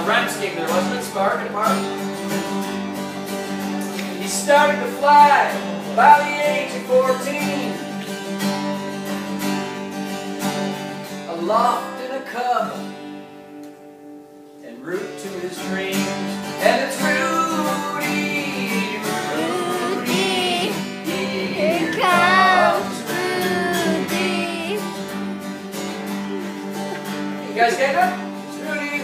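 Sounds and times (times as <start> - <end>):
acoustic guitar strumming: 16.0 - 27.5
person singing: 17.2 - 25.0.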